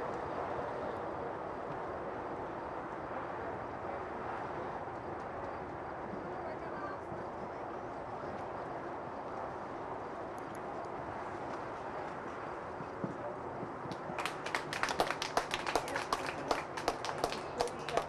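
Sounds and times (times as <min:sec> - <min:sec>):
murmur of distant voices: 0:00.0 - 0:18.0.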